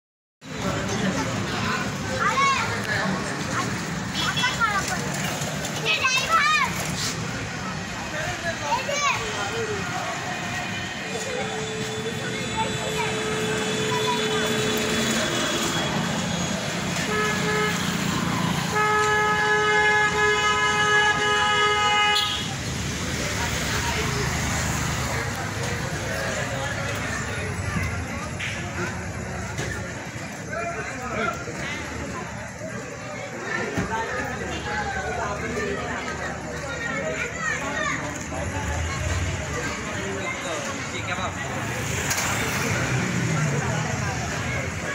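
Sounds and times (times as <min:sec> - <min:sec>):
crowd chatter: 0:00.4 - 0:44.9
people talking and calling out: 0:00.4 - 0:44.9.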